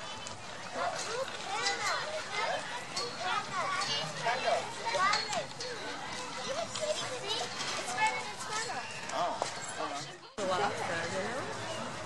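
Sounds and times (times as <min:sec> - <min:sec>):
people chattering and calling out: 0:00.0 - 0:12.0.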